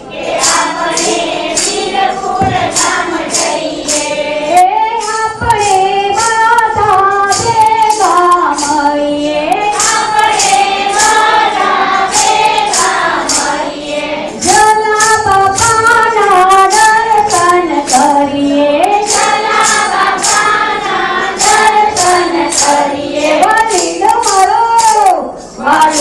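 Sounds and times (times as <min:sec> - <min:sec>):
group singing devotional song: 0:00.0 - 0:24.5, 0:25.6 - 0:26.0
high percussive beat: 0:00.0 - 0:26.0.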